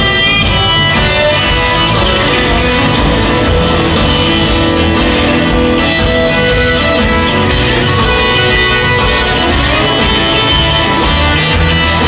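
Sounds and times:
electric guitar: 0.0s - 12.0s
live band playing: 0.0s - 12.0s.

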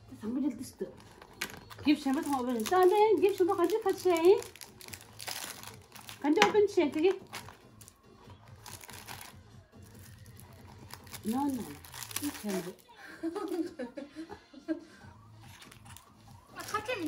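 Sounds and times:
plastic packaging crinkling: 1.0s - 13.6s, 15.5s - 17.0s.

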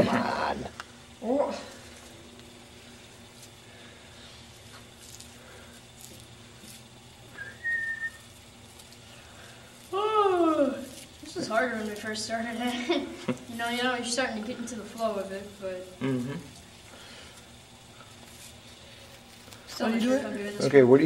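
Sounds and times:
short high whistle: 7.4s - 8.3s.

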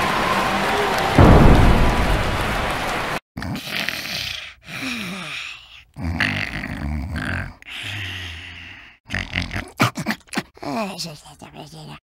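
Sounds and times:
cartoon character snoring: 3.4s - 10.3s
cartoon character grunting and snorting: 3.4s - 12.0s.

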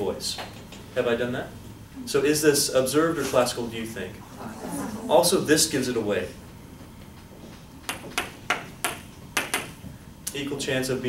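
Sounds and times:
marker tapping on whiteboard: 7.8s - 9.8s.

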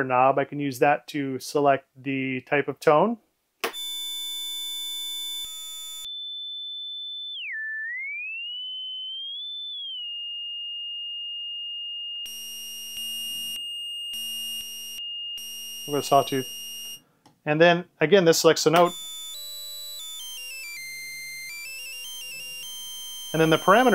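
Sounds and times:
pure sine tone: 3.7s - 17.1s, 18.8s - 23.9s
buzzy square-wave tone: 3.8s - 6.4s, 7.0s - 17.0s, 18.8s - 23.9s.

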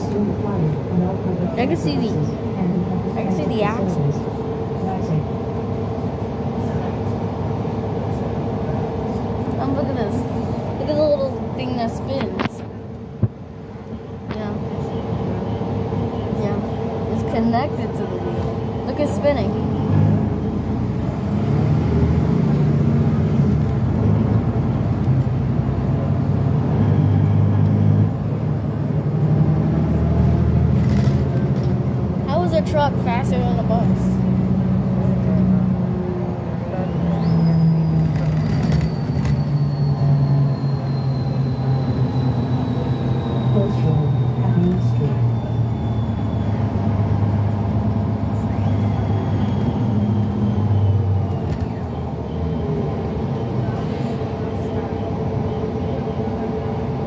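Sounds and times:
bus engine drone: 0.0s - 57.0s
road noise: 0.0s - 57.0s.

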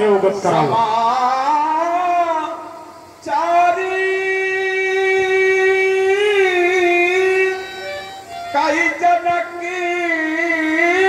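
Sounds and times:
man holding a long sung note: 0.6s - 11.0s.

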